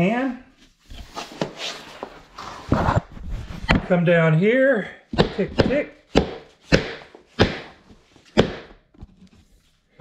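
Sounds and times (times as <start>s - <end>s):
knocks and scuffs on laminate floor: 5.1s - 9.3s.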